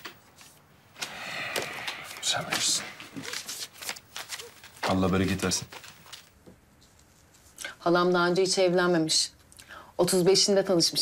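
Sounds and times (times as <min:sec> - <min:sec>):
paper banknotes rustling: 0:02.4 - 0:06.4.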